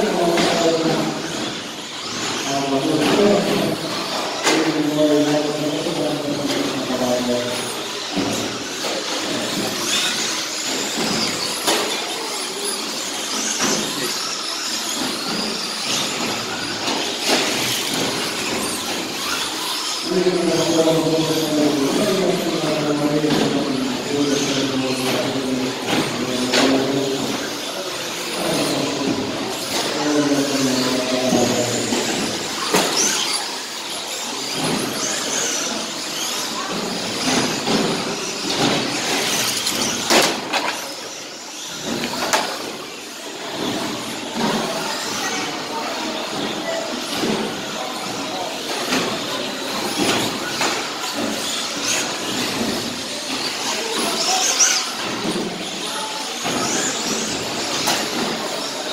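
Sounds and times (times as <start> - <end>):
rc car motors whining: 0.0 - 58.9.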